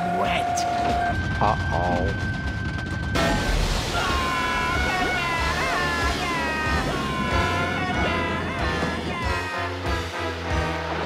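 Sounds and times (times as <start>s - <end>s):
music: 0.0s - 11.0s
cartoon water rushing: 3.2s - 10.6s.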